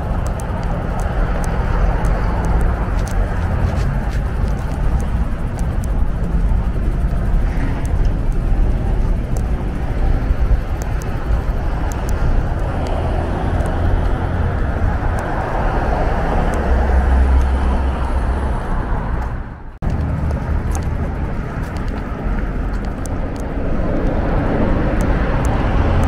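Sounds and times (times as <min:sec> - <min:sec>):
road traffic rumble: 0:00.0 - 0:26.0.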